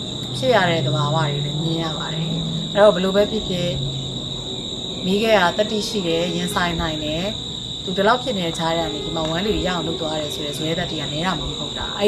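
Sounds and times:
crickets chirring: 0:00.0 - 0:12.0
woman speaking: 0:00.3 - 0:04.0, 0:05.0 - 0:12.0.

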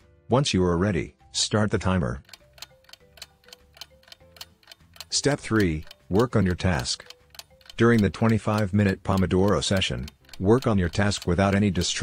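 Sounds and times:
faint background music: 0:00.0 - 0:12.0
clock ticking: 0:02.2 - 0:12.0.

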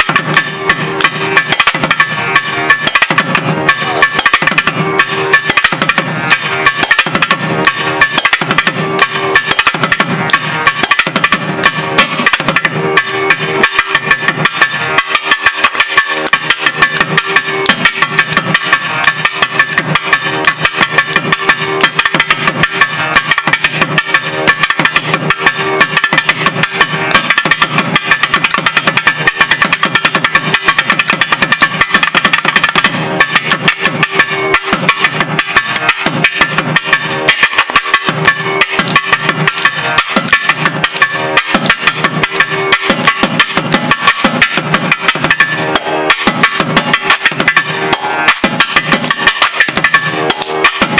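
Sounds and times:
drum struck rapidly: 0:00.0 - 0:50.9.

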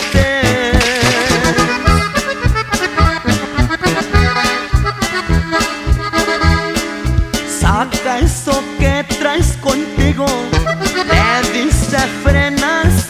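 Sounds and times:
accordion melody: 0:00.0 - 0:13.0
bass: 0:00.0 - 0:13.0
steady beat: 0:01.5 - 0:12.2.

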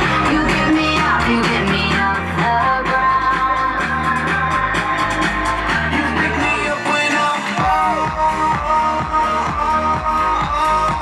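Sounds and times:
loud music with held notes: 0:00.0 - 0:11.0.

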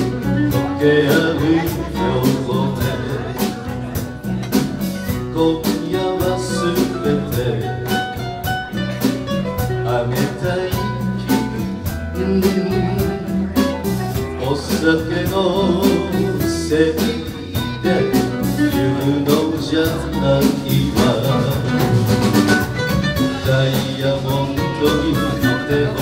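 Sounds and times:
live band playing instrumental: 0:00.0 - 0:26.0.

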